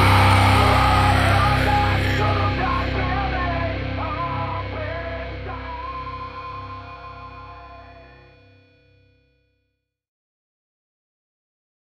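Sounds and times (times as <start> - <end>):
distorted electric guitar chord: 0.0 - 8.5.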